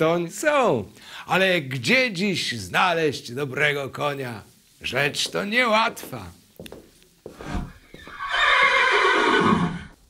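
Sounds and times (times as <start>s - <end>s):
horse whinnying: 7.6s - 10.0s.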